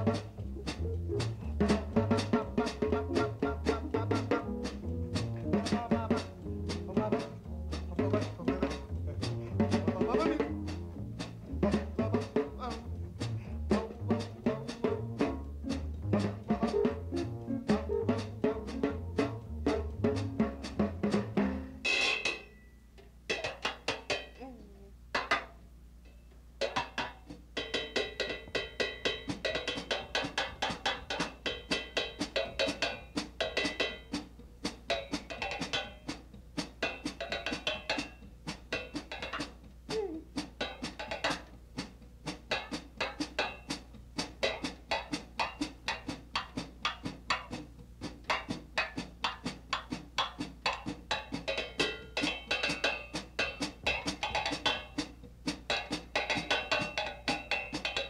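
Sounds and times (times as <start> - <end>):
melodic drum kit solo: 0.0 - 22.7, 26.6 - 58.0.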